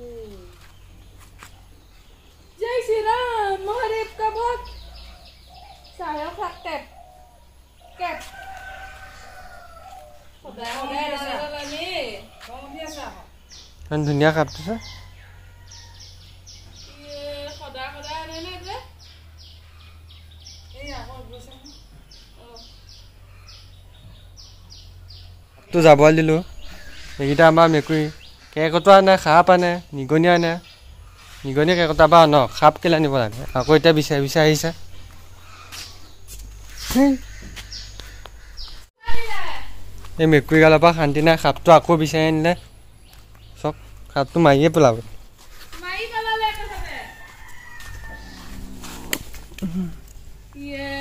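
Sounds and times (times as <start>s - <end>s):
bird chirping: 0.0s - 51.0s
rooster crowing: 7.9s - 10.4s, 14.5s - 16.4s, 46.7s - 49.1s.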